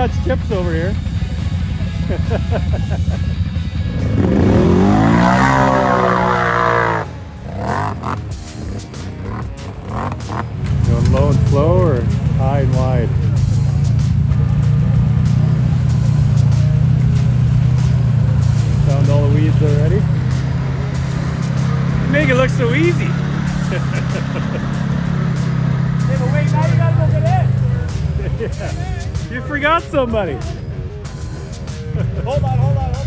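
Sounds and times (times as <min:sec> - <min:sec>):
loud steady engine drone: 0:00.0 - 0:28.2
engine revving hard: 0:03.8 - 0:11.6, 0:14.6 - 0:27.8.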